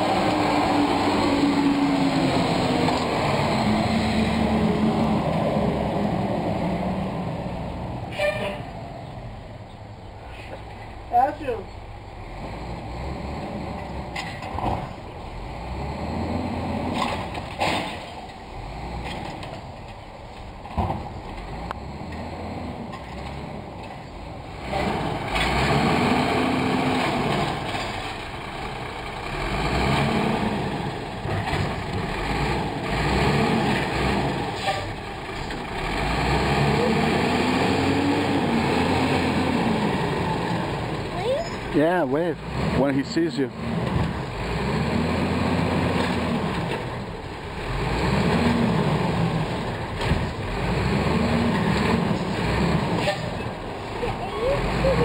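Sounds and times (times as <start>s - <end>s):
garbage truck engine revving: 0.0s - 9.4s, 12.0s - 19.8s, 20.6s - 55.0s.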